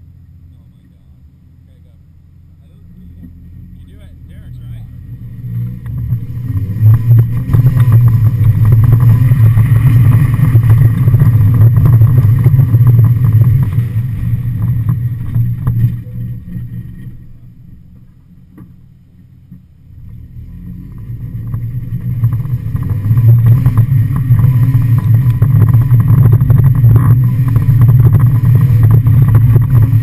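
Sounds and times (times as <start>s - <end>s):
car engine accelerating: 0.0s - 30.0s.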